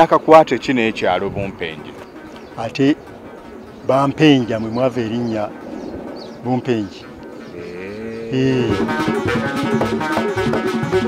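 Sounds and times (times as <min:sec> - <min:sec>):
man speaking in low voice: 0:00.0 - 0:02.0, 0:03.8 - 0:05.5, 0:06.4 - 0:08.8.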